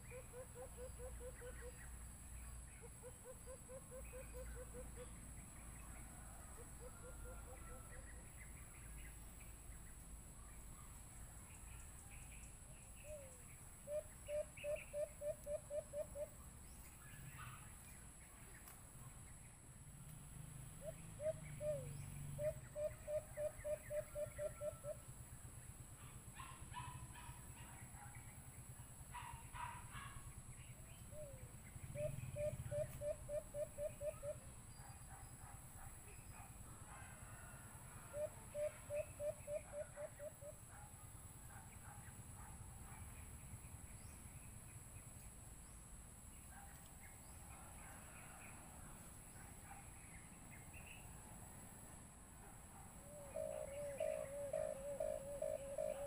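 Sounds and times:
faint high-pitched bird calls: 0:00.0 - 0:09.2, 0:10.4 - 0:18.8, 0:25.9 - 0:43.3, 0:52.7 - 0:56.0
dove quick hooting: 0:31.9 - 0:34.4, 0:53.0 - 0:56.0.

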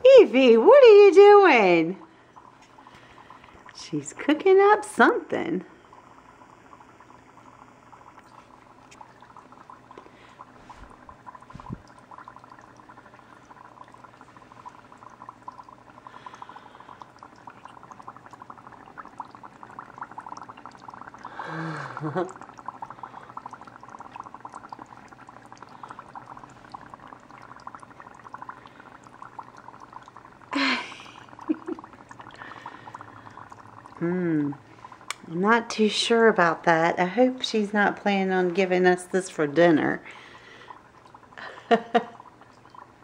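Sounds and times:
liquid bubbling: 0:00.0 - 0:43.0.

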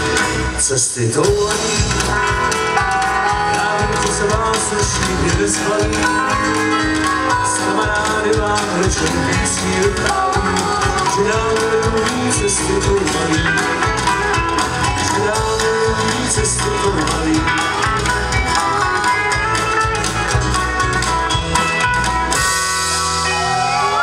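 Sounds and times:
live band with banjos and drums: 0:00.0 - 0:24.0
crowd cheering: 0:22.3 - 0:24.0.

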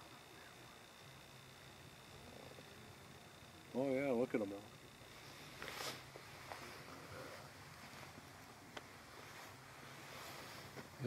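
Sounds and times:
faint background hiss: 0:00.0 - 0:11.0
low hum: 0:00.0 - 0:11.0.

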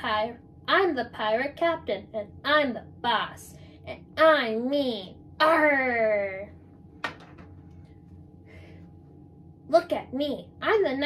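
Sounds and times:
steady low hum: 0:00.0 - 0:11.0
faint breathy noise: 0:08.4 - 0:09.1.

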